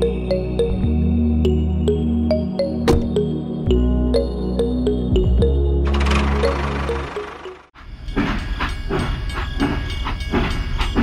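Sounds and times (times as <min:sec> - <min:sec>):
background music: 0:00.0 - 0:07.8
toy train chugging on track: 0:06.4 - 0:11.0.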